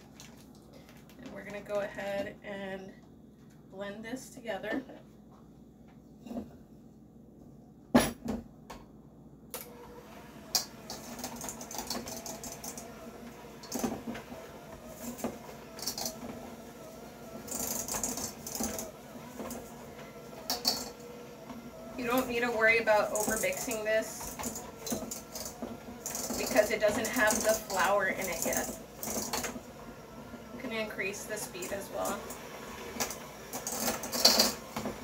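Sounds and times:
electric hand mixer motor: 0:09.6 - 0:35.0
beaters rattling against bowl: 0:20.5 - 0:21.0, 0:22.0 - 0:29.6, 0:33.0 - 0:34.8.

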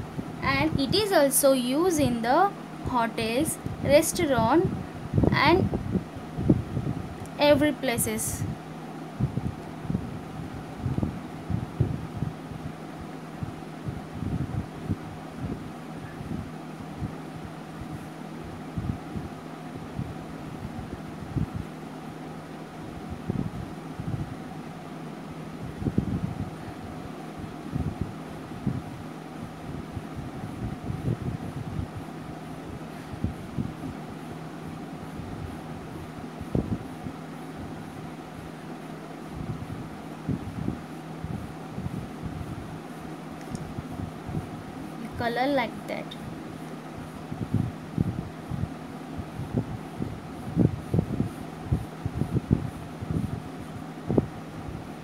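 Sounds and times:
steady background hum: 0:00.0 - 0:55.0.

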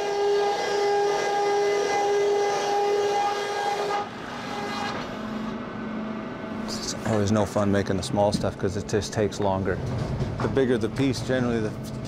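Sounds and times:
sawmill machinery whine: 0:00.0 - 0:08.2.

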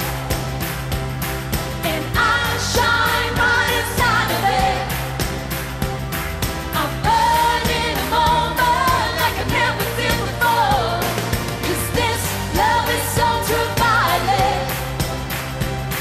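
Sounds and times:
pop backing track with beat: 0:00.0 - 0:16.0
woman singing: 0:06.8 - 0:14.9.

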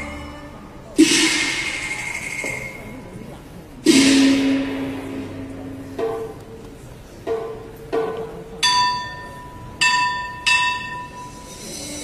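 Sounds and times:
plucked string note: 0:03.9 - 0:06.6
small bell-like metal percussion: 0:08.6 - 0:12.0.

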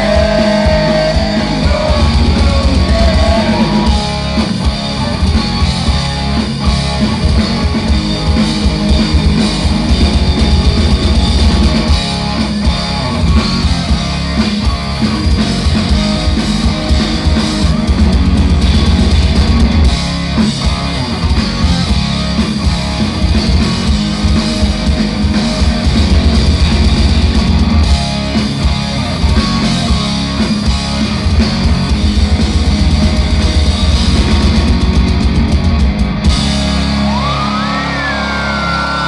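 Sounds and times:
bass guitar: 0:00.0 - 0:39.0
drum kit: 0:00.0 - 0:39.0
electric guitars: 0:00.0 - 0:39.0.

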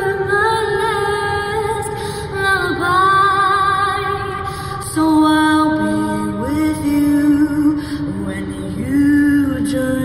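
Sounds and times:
woman singing slow melody: 0:00.0 - 0:10.0.

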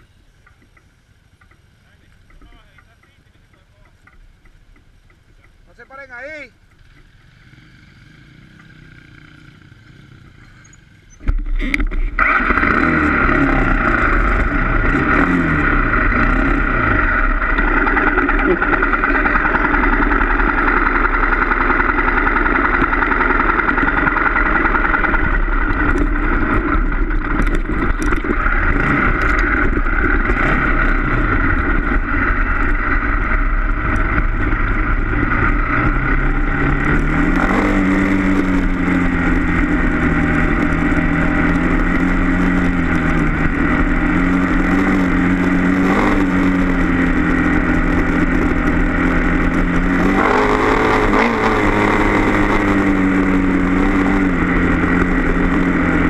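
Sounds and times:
dirt bike engine revving: 0:05.6 - 0:56.0.

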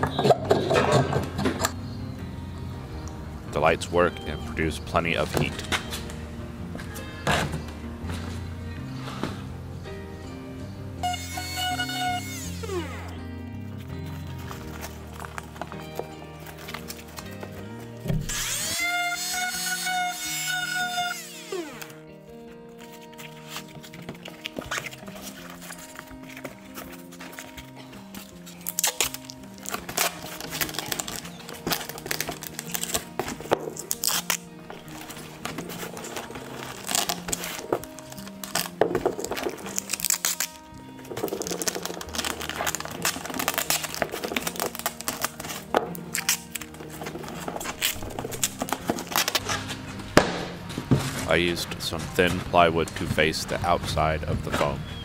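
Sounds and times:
background music: 0:00.0 - 0:55.0
foil tape crinkling and tearing: 0:11.0 - 0:13.2, 0:14.0 - 0:22.0, 0:22.7 - 0:50.0
oscillating multi-tool whine: 0:11.1 - 0:13.1, 0:18.2 - 0:22.0.

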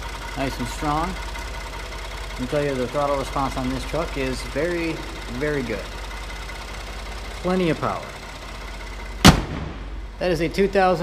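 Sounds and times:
truck engine idling: 0:00.0 - 0:11.0
hood slamming shut: 0:09.2 - 0:10.1.

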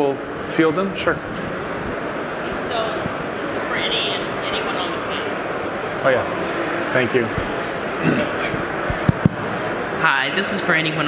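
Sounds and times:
busy exhibition hall din: 0:00.0 - 0:11.0
faint distant voices: 0:02.0 - 0:11.0.

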